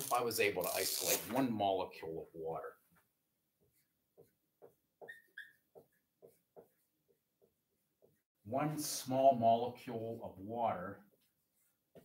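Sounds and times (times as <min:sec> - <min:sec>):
marker writing on whiteboard: 0:03.6 - 0:08.3, 0:11.1 - 0:12.0
marker tip squeaks: 0:05.0 - 0:06.0.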